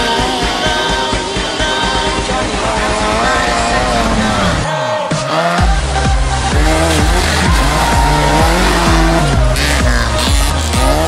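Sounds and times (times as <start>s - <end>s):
music track: 0.0s - 11.0s
rally car engine revving: 0.0s - 11.0s.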